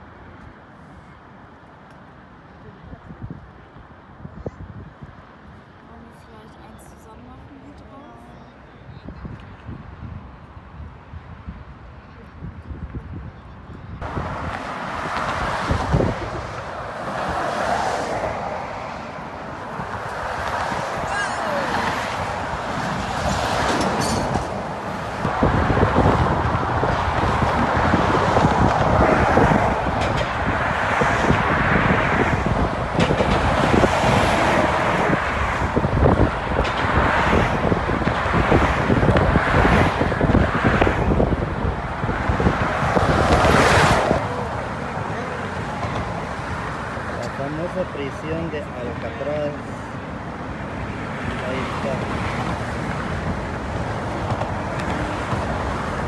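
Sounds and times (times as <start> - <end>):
cars and trucks passing: 0.0 - 56.0
deep traffic rumble: 0.0 - 56.0.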